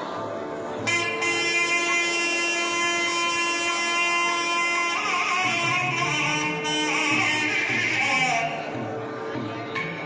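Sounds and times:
double-reed pipe long note: 0.8 - 9.0.

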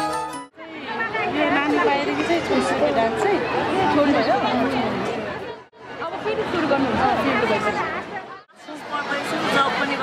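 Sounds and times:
crowd chatter: 0.0 - 10.0
people talking: 0.6 - 10.0.

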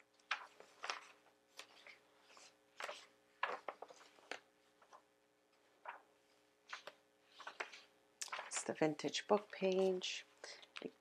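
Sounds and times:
paper pages turning: 0.1 - 11.0.

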